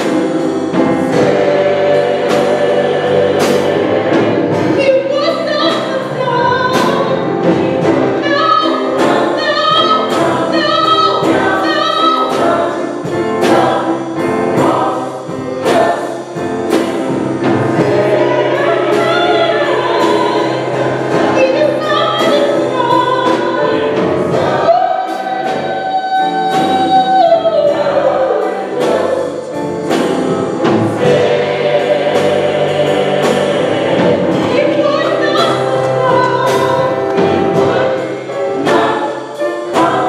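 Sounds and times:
choir singing gospel song: 0:00.0 - 0:40.0
steady beat: 0:00.0 - 0:40.0.

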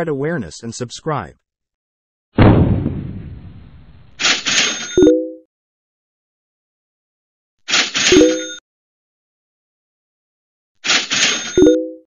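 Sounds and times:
low thump: 0:02.4 - 0:04.0.

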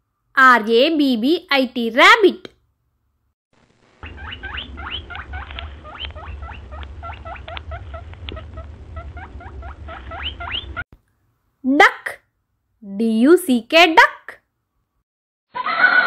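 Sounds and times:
rabbit squeaking: 0:04.0 - 0:10.8
low rumble: 0:04.4 - 0:10.8.

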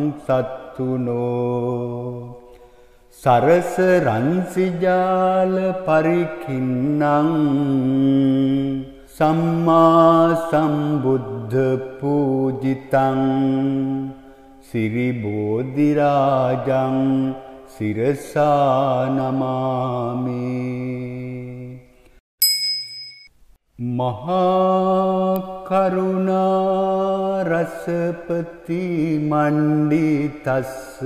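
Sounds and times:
man chanting: 0:00.0 - 0:02.4, 0:03.1 - 0:21.8, 0:23.8 - 0:31.0
small bell ringing: 0:22.4 - 0:23.4.

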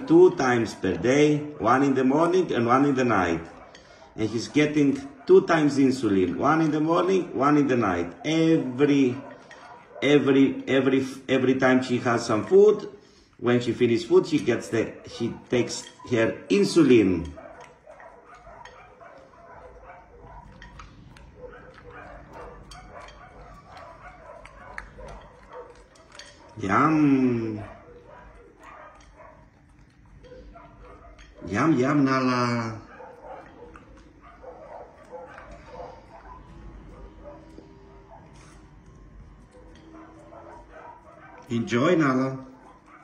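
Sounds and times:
dog chewing food from a bowl: 0:00.0 - 0:43.0.

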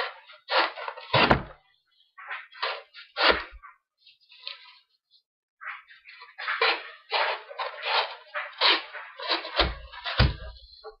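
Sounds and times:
knife shaving cardboard: 0:00.0 - 0:01.4, 0:02.3 - 0:03.7, 0:06.0 - 0:11.0.

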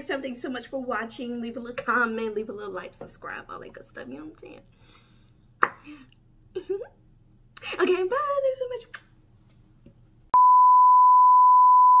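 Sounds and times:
steady test tone beep: 0:10.4 - 0:12.0.

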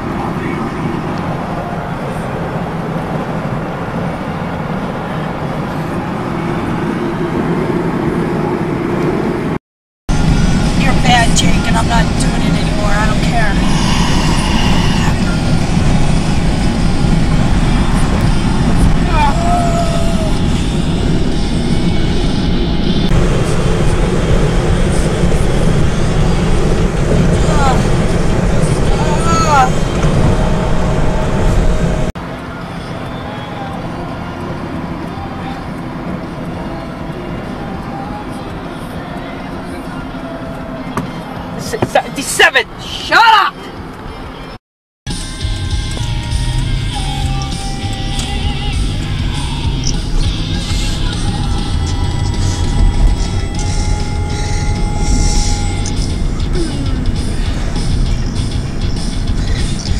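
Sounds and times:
road and engine rumble: 0:00.0 - 0:59.9.

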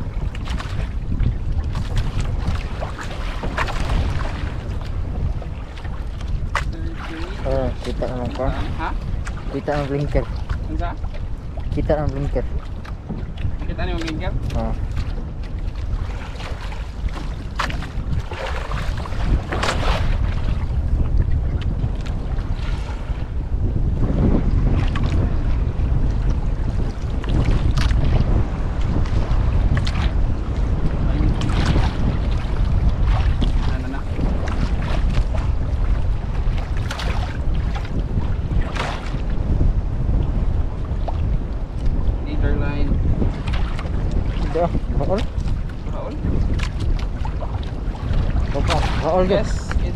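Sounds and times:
steady low rumble: 0:00.0 - 0:49.9
wind buffeting microphone: 0:00.0 - 0:49.9.

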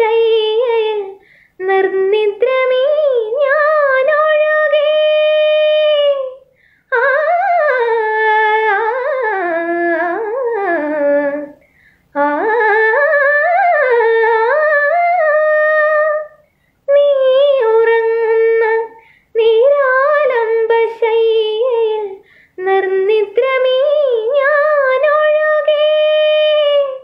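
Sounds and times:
woman singing unaccompanied: 0:00.0 - 0:27.0.

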